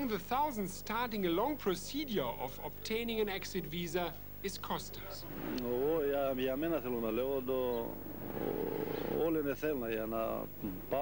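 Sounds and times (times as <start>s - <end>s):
man speaking: 0.0s - 8.0s
passing vehicle rushing: 7.9s - 9.4s.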